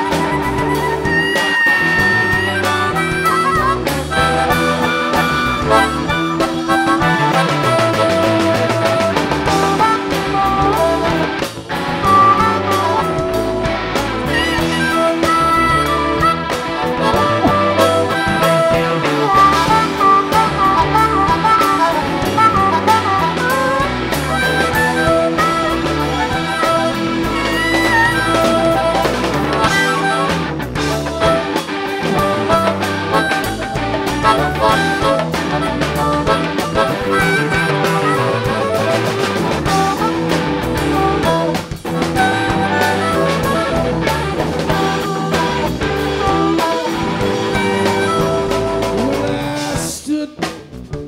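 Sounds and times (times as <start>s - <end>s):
bass guitar: 0.0s - 51.0s
drums: 0.0s - 51.0s
electric guitar: 0.0s - 51.0s.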